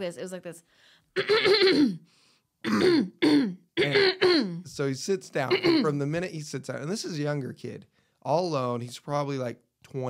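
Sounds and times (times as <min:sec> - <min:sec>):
person grunting throat-clearing: 0:02.7 - 0:04.6, 0:05.5 - 0:05.9.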